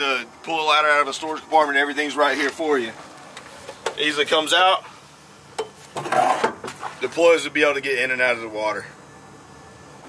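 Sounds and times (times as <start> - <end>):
metal ladder scraping and clattering: 6.0 - 6.9.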